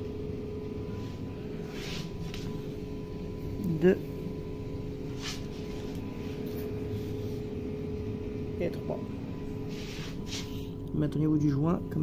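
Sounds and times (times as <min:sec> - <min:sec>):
low appliance hum: 0:00.0 - 0:12.0.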